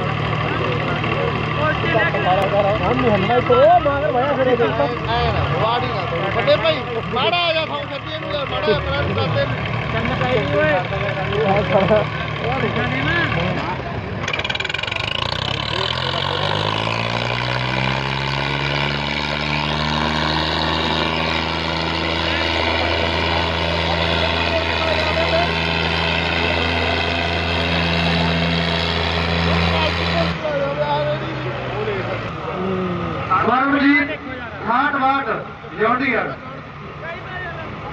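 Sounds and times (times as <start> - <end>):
tractor diesel engines at full throttle: 0.0 - 37.9.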